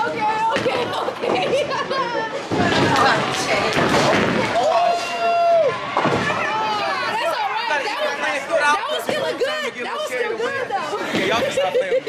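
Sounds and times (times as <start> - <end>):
ball crashing into pins: 2.5 - 4.6.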